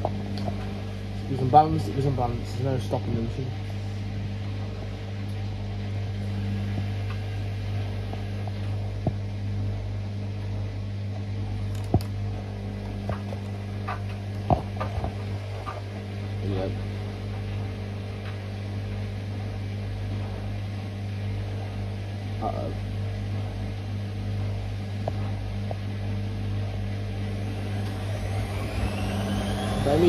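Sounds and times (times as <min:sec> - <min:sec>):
washing machine spinning: 0:00.0 - 0:30.0.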